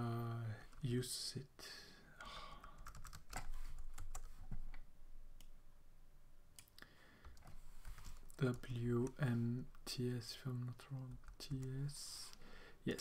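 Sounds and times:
computer keyboard clicks: 2.6s - 4.3s.

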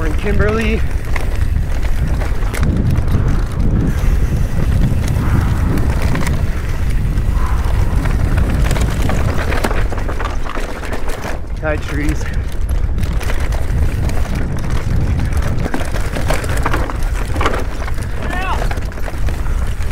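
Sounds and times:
bike clicks and rattles: 0.0s - 19.9s
bike tyres rolling over dirt: 0.0s - 19.9s
wind buffeting on microphone: 0.0s - 19.9s.

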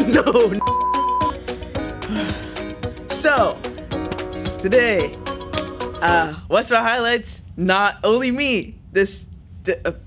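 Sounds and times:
background music: 0.0s - 6.5s
short electronic beep: 0.6s - 1.4s.

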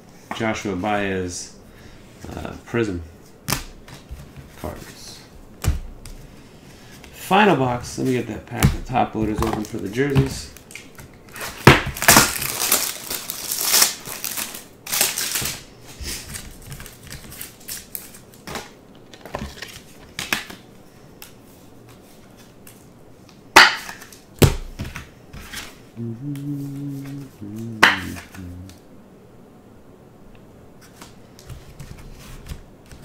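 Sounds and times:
plastic wrapping tearing and crinkling: 10.6s - 15.6s.

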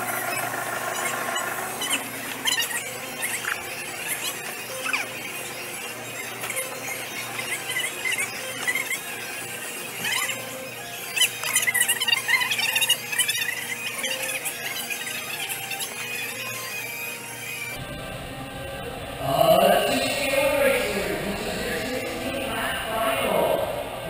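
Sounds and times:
go-kart tyres squealing: 0.0s - 17.9s
steady hum: 0.0s - 24.0s.

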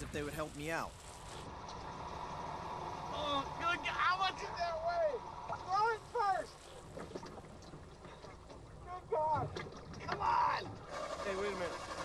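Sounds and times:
water sloshing: 1.1s - 12.0s.

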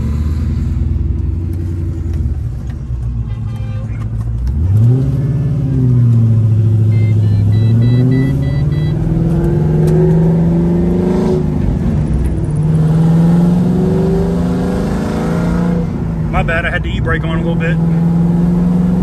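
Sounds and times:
car engine accelerating: 3.9s - 19.0s
faint electronic beeps: 6.8s - 9.0s.

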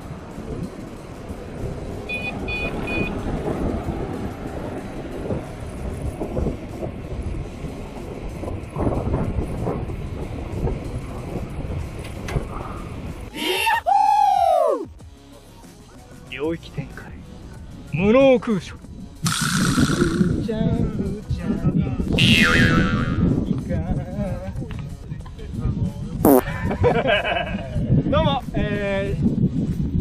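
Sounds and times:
wind and road noise: 0.0s - 30.0s
short high beeps: 2.1s - 3.1s
swooping sound effect: 19.3s - 20.4s.

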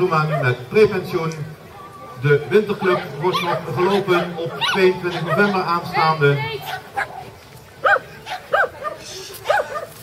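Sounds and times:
small dog yipping: 4.6s - 5.6s, 7.8s - 10.0s.

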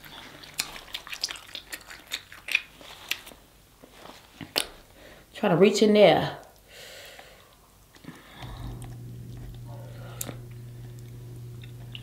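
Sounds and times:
wet chewing and mouth clicks: 0.0s - 3.5s, 4.4s - 4.9s, 7.9s - 12.0s.

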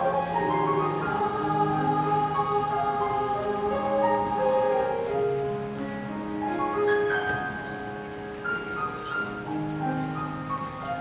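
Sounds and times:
girls' choir singing in harmony: 0.0s - 5.7s.

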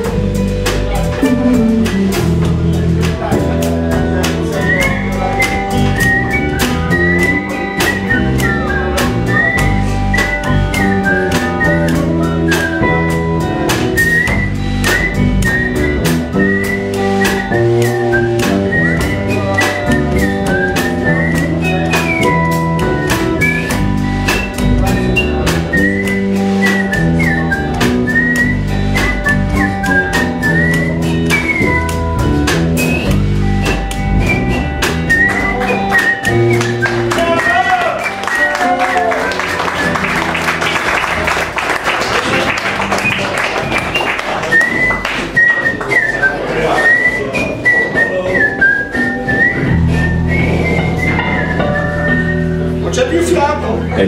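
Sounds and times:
electric guitar lead: 0.0s - 45.4s
electric bass: 0.0s - 45.5s, 48.4s - 54.0s
drum kit: 0.0s - 54.0s.

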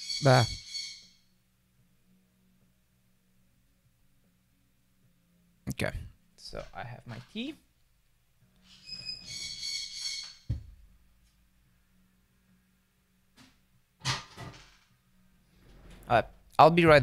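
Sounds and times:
bird screaming: 0.0s - 1.2s, 8.7s - 10.5s.

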